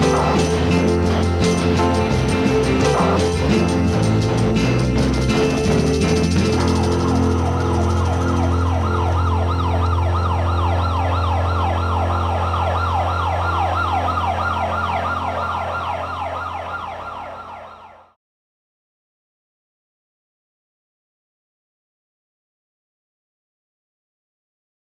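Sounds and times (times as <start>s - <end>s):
low electronic drone: 0.0s - 18.0s
siren-like falling sweep: 0.0s - 18.2s.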